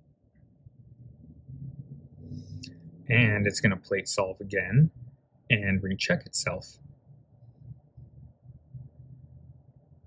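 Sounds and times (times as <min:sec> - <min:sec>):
faint low-pitched hum: 0:00.0 - 0:10.0.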